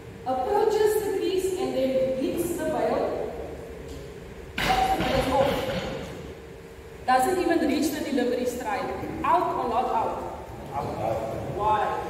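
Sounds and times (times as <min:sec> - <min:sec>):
voices: 0:00.3 - 0:06.1, 0:07.1 - 0:12.0.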